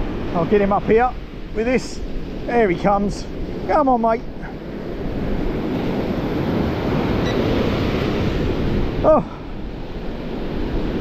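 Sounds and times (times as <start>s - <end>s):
surf breaking on beach: 0.0s - 11.0s.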